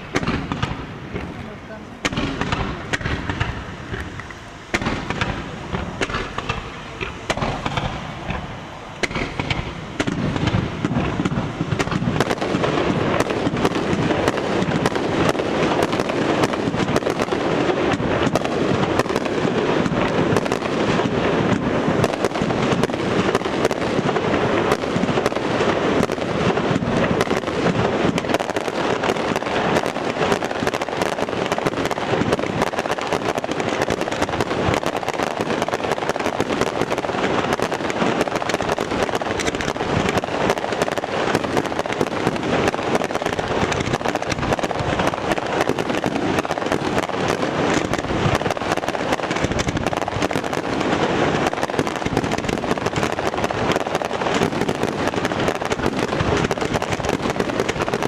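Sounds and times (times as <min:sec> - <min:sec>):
fireworks bangs and crackling: 0:00.0 - 0:58.0.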